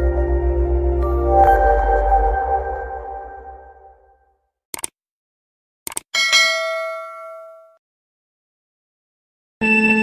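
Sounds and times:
notification bell ding: 0:06.2 - 0:07.8.

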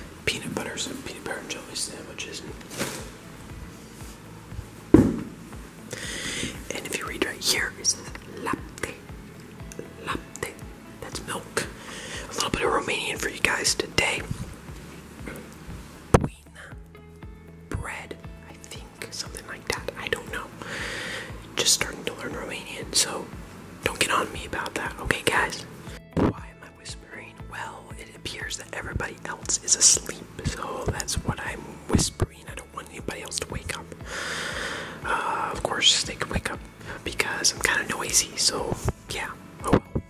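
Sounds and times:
person whispering: 0:00.2 - 0:02.9, 0:05.9 - 0:09.1, 0:09.8 - 0:14.6, 0:16.2 - 0:16.9, 0:17.7 - 0:20.6, 0:21.6 - 0:34.1, 0:35.0 - 0:40.0.

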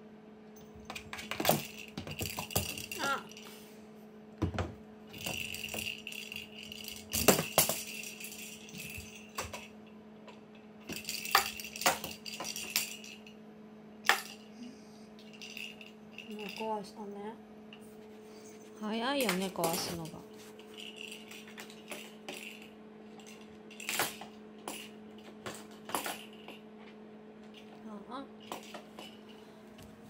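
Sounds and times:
steady low hum: 0:00.0 - 0:30.0
balls rattling inside cardboard box: 0:00.9 - 0:03.4, 0:05.1 - 0:09.7.

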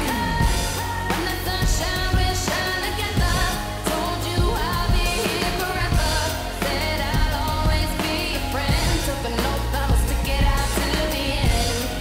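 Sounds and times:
deep sustained bass: 0:00.0 - 0:12.0
programmed drum beat: 0:00.0 - 0:12.0
woman singing: 0:00.0 - 0:12.0.

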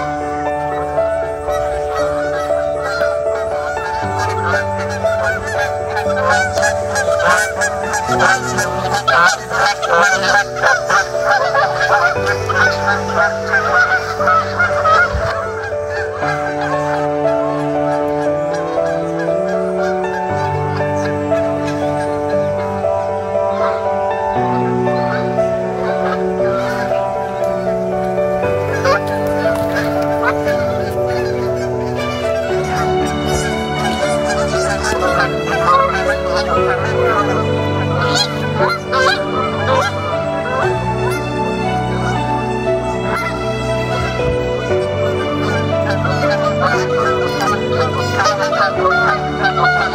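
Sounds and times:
geese honking: 0:00.0 - 0:49.9
slow sustained music notes: 0:00.0 - 0:49.9.

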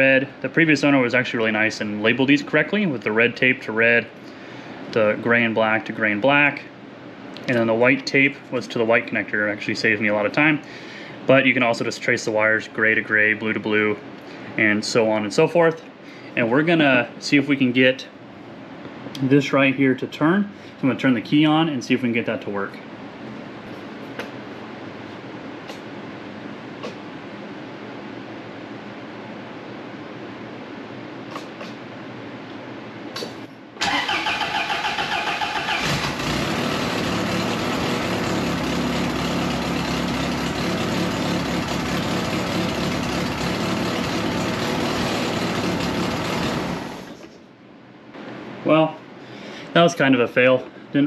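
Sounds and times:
car engine starting and idling: 0:33.8 - 0:47.2.

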